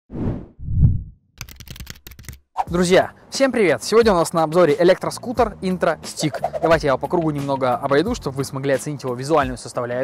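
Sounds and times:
rapid clicks: 1.4s - 2.4s.

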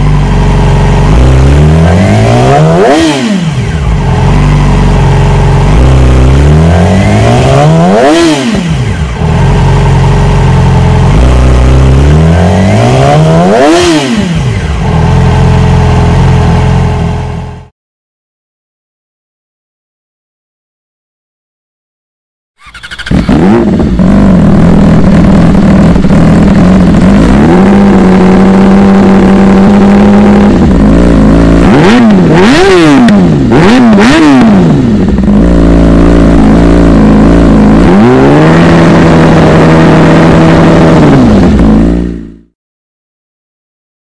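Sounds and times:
motorcycle engine revving: 0.0s - 17.7s, 22.6s - 42.6s.

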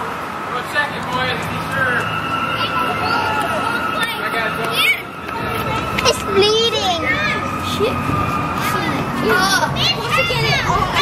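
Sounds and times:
children calling out and chattering: 0.5s - 11.0s
children playing: 0.7s - 11.0s.

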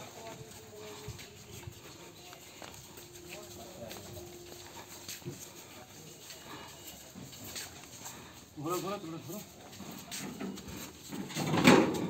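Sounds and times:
faint men's voices: 0.0s - 11.1s
light knocks and shuffles: 0.0s - 12.0s.

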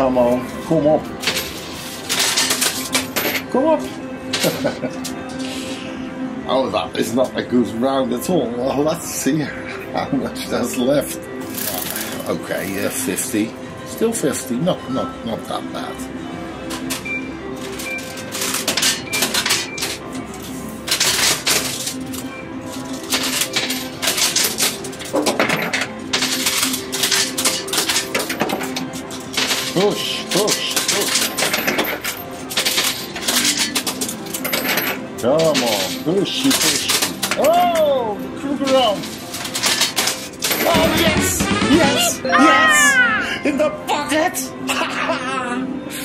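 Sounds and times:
coins clattering in a machine: 1.0s - 5.5s, 11.4s - 12.8s, 16.7s - 42.0s.

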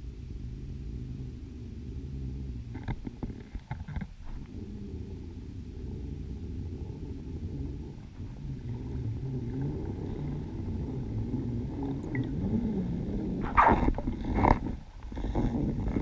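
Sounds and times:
low underwater rumble: 0.0s - 16.0s
bubbles released underwater: 7.9s - 14.8s.

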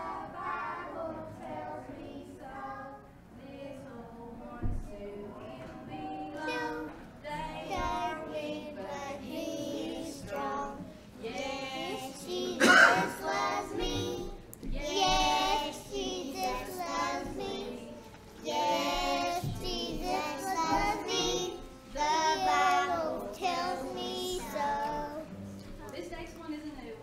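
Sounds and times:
children singing: 0.0s - 25.3s
acoustic guitar: 4.6s - 26.2s.

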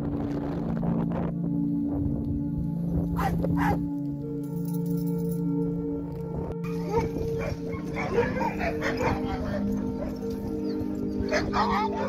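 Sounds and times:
background music: 0.0s - 12.0s
dog barking: 3.1s - 3.8s, 6.6s - 10.5s, 11.2s - 12.0s.

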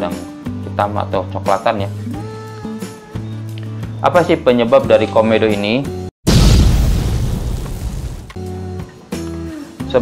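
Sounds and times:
deep boom hit: 6.3s - 8.3s.

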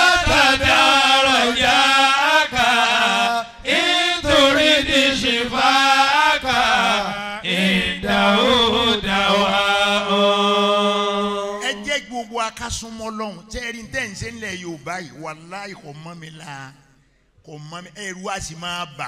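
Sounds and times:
man chanting: 10.7s - 16.9s, 17.5s - 19.0s.

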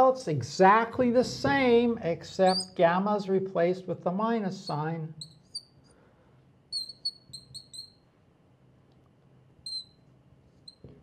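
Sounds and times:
marker squeaking on glass: 2.4s - 2.8s, 4.6s - 5.8s, 6.7s - 8.1s, 9.6s - 10.9s.

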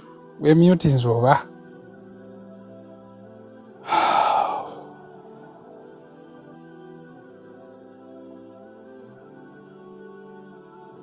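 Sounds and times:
soft ambient music: 0.0s - 11.0s
sharp breathy exhale: 3.8s - 5.0s.

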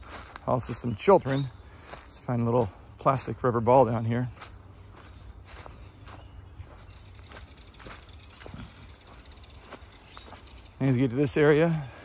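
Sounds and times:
footsteps on mulch and dry leaves: 0.0s - 12.0s.

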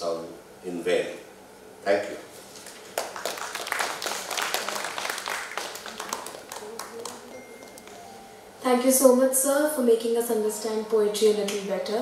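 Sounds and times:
audience applauding: 2.6s - 8.0s.

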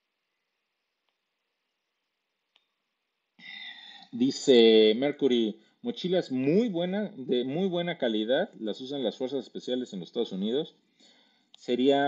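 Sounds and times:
faint click: 2.5s - 2.8s
man speaking: 4.0s - 10.8s, 11.6s - 12.0s.

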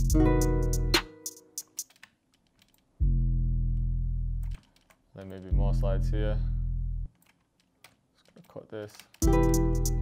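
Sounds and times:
low bass note: 3.0s - 4.4s.

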